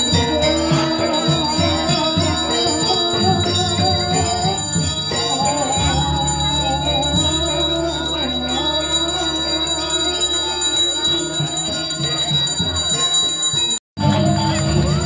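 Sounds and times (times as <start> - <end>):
bronze hand bell ringing: 0.0 - 15.0
chanted melody: 0.0 - 15.0.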